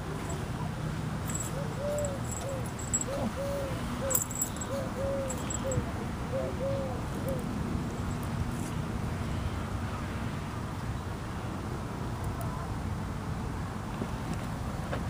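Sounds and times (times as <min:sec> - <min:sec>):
low background hum: 0:00.0 - 0:09.6
dove cooing: 0:01.3 - 0:07.5.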